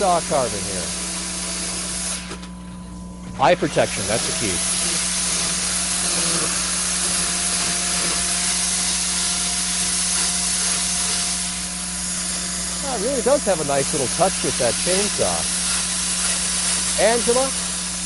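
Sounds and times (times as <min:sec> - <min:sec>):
chainsaw carving wood: 0:00.0 - 0:02.4, 0:03.4 - 0:18.0.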